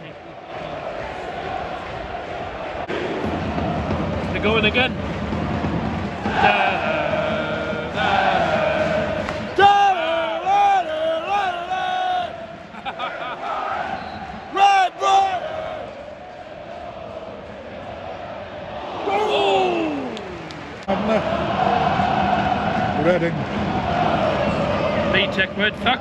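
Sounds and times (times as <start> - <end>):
crowd singing a chant: 0.0 - 4.3, 5.0 - 19.3, 20.6 - 26.0
general crowd noise: 0.0 - 9.9.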